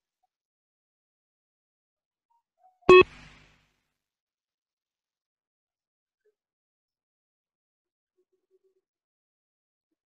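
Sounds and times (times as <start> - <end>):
short electronic beep: 2.9 - 3.4.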